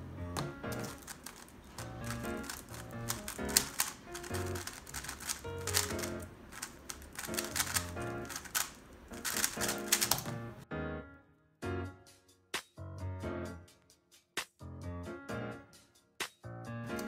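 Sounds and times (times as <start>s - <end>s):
background music: 0.0s - 6.4s, 9.1s - 17.0s
speedcube clacking: 0.4s - 10.4s.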